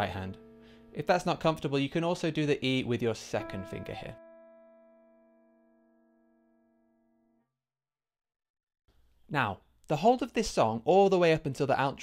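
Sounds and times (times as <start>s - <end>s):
piano chord: 0.0s - 1.8s, 3.4s - 7.4s.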